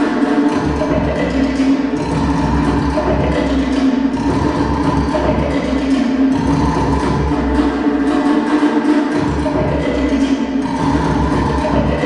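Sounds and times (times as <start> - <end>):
low drum beats: 0.0 - 8.1, 9.2 - 12.0.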